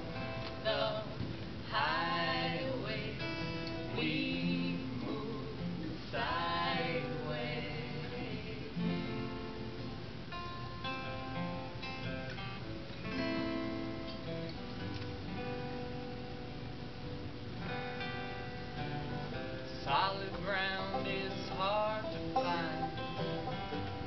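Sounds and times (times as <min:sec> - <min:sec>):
acoustic guitar strummed: 0:00.0 - 0:24.0
banjo picked: 0:19.8 - 0:24.0.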